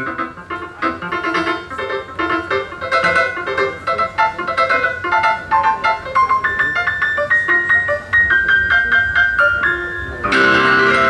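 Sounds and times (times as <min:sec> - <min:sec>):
grand piano melody: 0:00.0 - 0:11.0.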